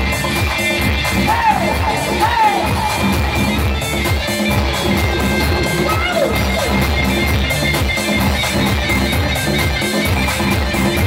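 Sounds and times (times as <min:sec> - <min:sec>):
drums beating: 0:00.0 - 0:11.0
electric guitar: 0:00.0 - 0:11.0
keyboard: 0:00.0 - 0:11.0
live band music: 0:00.0 - 0:11.0.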